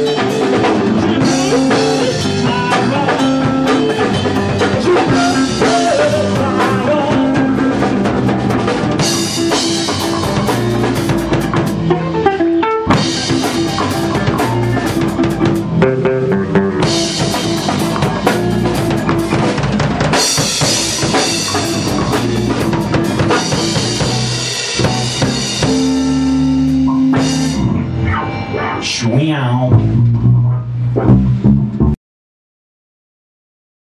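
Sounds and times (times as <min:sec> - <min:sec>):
rock band playing: 0:00.0 - 0:32.0.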